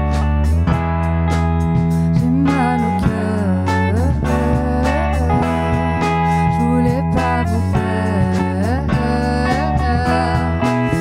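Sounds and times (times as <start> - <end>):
live band playing pop song: 0.0 - 11.0
woman singing: 2.1 - 11.0.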